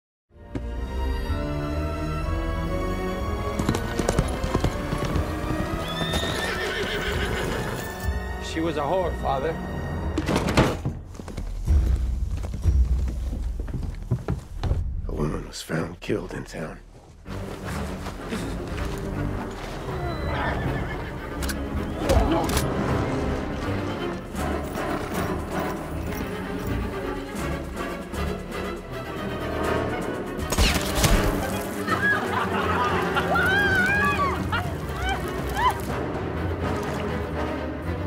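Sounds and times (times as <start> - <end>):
film score music: 0.3 - 38.0
horse hooves clattering: 3.2 - 8.1, 10.3 - 14.9, 17.0 - 21.7, 23.4 - 27.8
horse neighing: 5.6 - 7.9, 19.8 - 21.3.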